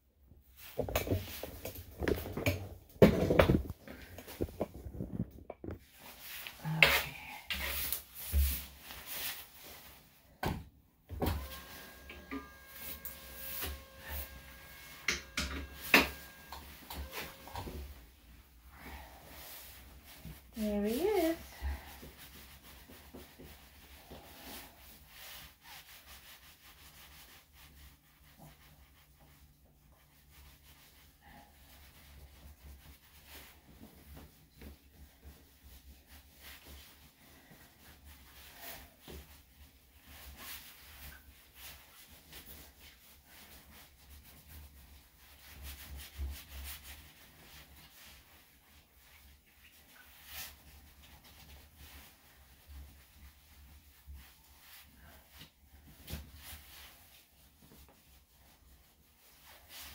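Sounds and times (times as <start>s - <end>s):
towel rubbing dog's coat: 5.8s - 10.2s, 11.2s - 59.9s
low steady hum: 11.1s - 19.8s.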